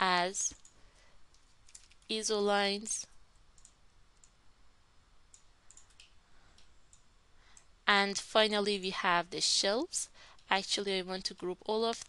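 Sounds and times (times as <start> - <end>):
computer mouse clicks: 0.5 - 2.1, 3.5 - 4.4, 5.3 - 7.7.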